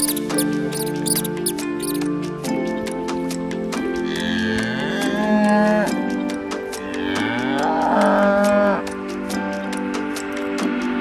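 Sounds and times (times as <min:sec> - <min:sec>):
background music: 0:00.0 - 0:11.0
cow mooing: 0:07.0 - 0:08.9.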